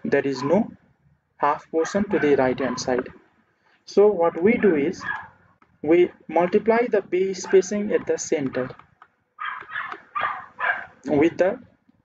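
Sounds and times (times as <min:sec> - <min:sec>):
dog barking: 0:00.4 - 0:00.7, 0:01.8 - 0:03.0, 0:05.0 - 0:05.4, 0:07.4 - 0:08.2, 0:09.4 - 0:11.0.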